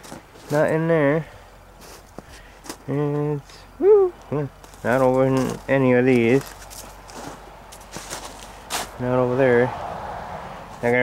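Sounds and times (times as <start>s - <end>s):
footsteps in snow: 0.0s - 0.8s, 1.8s - 2.8s, 4.6s - 9.1s.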